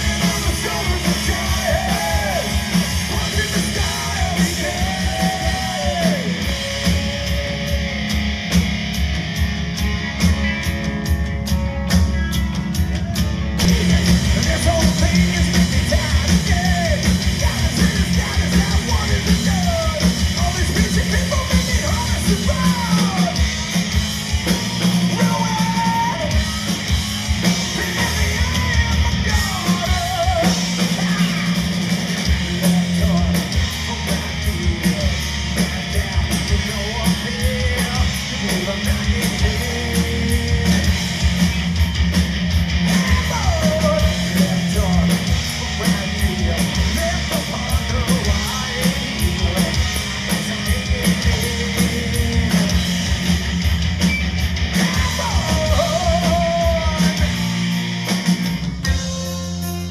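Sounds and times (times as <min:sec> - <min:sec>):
man singing: 0:00.0 - 0:08.0, 0:13.6 - 0:23.8, 0:24.5 - 0:26.7, 0:27.5 - 0:31.6, 0:32.4 - 0:41.0, 0:42.9 - 0:53.0, 0:54.8 - 0:57.6
heavy metal band playing: 0:00.0 - 0:59.9.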